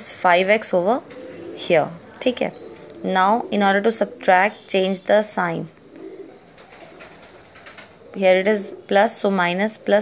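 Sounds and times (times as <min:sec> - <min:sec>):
pigeon cooing: 0:00.8 - 0:04.6, 0:05.7 - 0:10.0.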